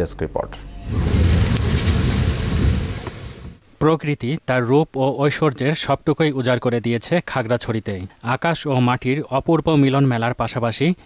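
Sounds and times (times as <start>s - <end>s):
loud low rushing noise: 0.8s - 3.6s.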